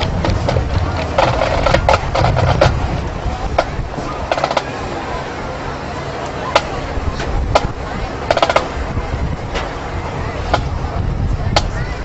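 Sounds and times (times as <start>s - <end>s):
low rumble: 0.0s - 4.4s
marching band percussion hits: 0.0s - 4.8s, 7.5s - 8.8s.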